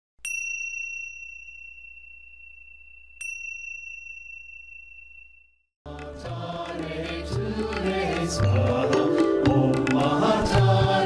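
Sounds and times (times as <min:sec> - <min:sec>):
high bell-like chime: 0:00.2 - 0:05.7.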